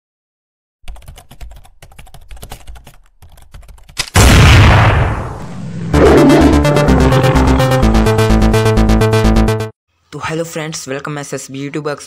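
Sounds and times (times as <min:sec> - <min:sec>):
computer keyboard typing: 0:00.9 - 0:04.0.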